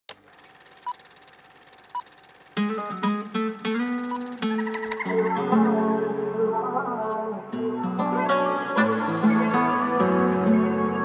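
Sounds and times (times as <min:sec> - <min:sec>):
afrobeat instrumental music: 0:02.6 - 0:06.8
short high electronic beeps: 0:02.7 - 0:06.2.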